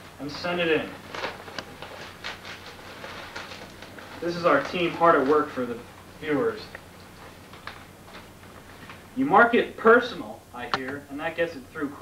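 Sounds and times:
paper rustling and crinkling: 0.4 - 9.1.

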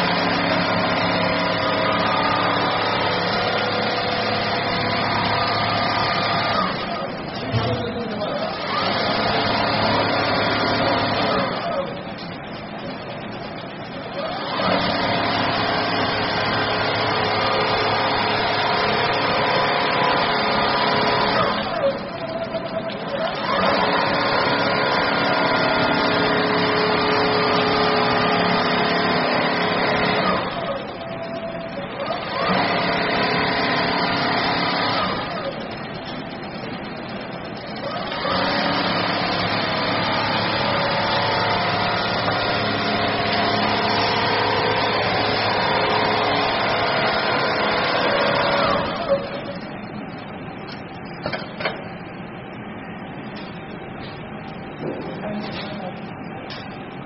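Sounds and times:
quilting machine whining: 0.0 - 50.4.

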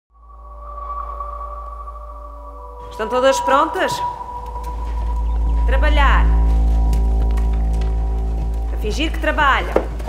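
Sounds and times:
deep low drone: 0.1 - 10.0
steady held tones: 0.1 - 10.0.

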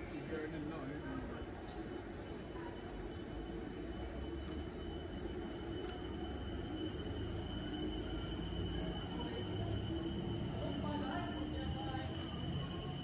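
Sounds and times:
high-pitched whine: 0.0 - 13.0
train low rumble: 0.0 - 13.0.

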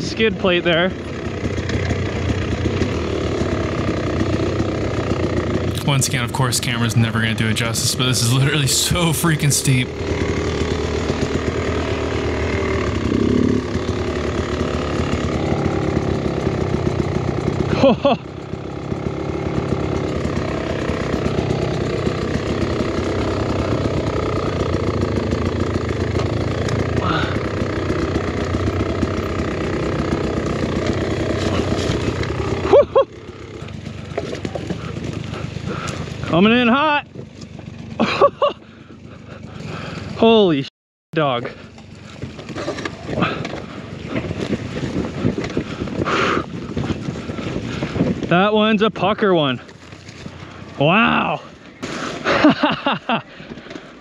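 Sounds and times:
dirt bike engine running: 0.0 - 54.0
rider laughing and exclaiming: 5.7 - 10.4, 17.4 - 24.8, 26.8 - 28.8, 31.2 - 37.0, 37.6 - 40.5, 41.4 - 48.6, 50.6 - 54.0.

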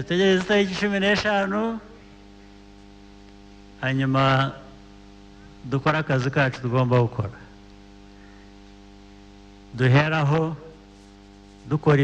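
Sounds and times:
man's voice: 0.0 - 2.0, 3.8 - 4.7, 5.6 - 7.5, 9.8 - 10.8, 11.7 - 12.0
low steady hum: 0.0 - 12.0.

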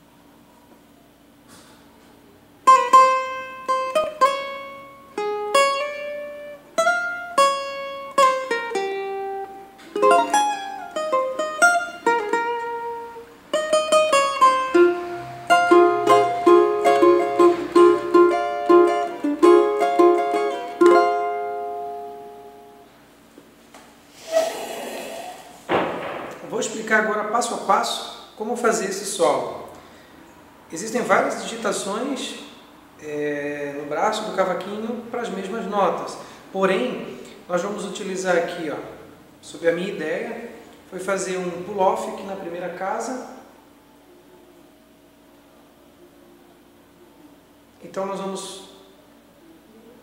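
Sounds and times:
cavaquinho melody: 2.6 - 23.1.

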